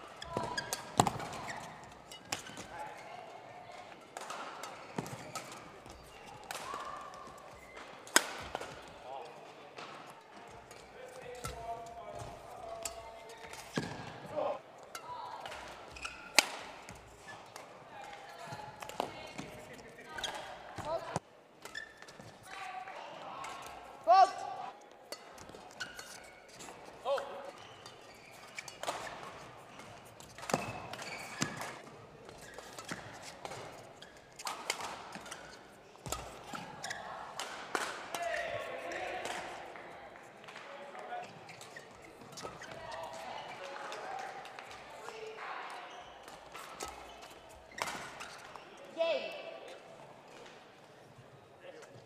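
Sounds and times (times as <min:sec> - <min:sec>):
shoe squeaks on court floor: 0:00.1 - 0:03.1, 0:04.7 - 0:06.4, 0:15.8 - 0:17.6, 0:18.3 - 0:22.4, 0:25.4 - 0:37.2, 0:41.2 - 0:43.3, 0:45.8 - 0:48.8
rackets striking shuttlecock: 0:00.2 - 0:02.7, 0:04.1 - 0:06.9, 0:07.7 - 0:08.9, 0:12.2 - 0:19.6, 0:27.8 - 0:31.9, 0:32.5 - 0:38.4
player shouting: 0:24.0 - 0:24.7.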